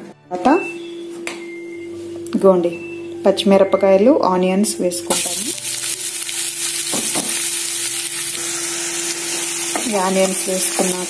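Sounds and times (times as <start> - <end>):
onions sizzling in hot oil: 5.1 - 11.0.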